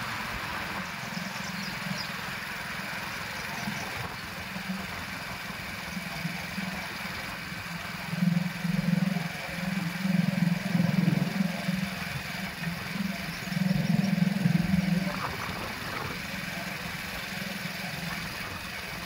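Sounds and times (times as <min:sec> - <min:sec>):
vehicle engine hum: 0:00.0 - 0:19.0.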